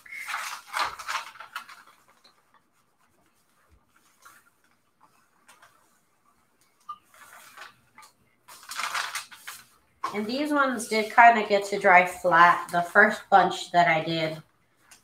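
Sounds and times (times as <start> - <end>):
paper rustling: 0.0 - 13.2
iron rubbing over damp paper: 8.5 - 13.2.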